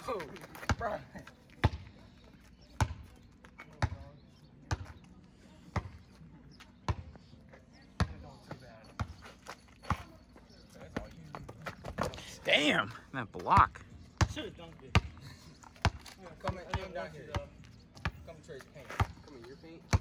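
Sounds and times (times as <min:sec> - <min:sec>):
basketball bouncing on asphalt: 0:00.1 - 0:05.1, 0:05.7 - 0:07.3, 0:07.9 - 0:12.2, 0:13.4 - 0:20.0.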